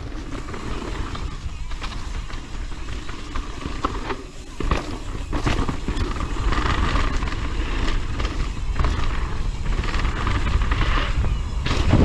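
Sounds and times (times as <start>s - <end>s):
bike rattling: 0.0s - 12.0s
tyres rolling on loose dirt: 0.0s - 12.0s
wind buffeting microphone: 4.8s - 12.0s.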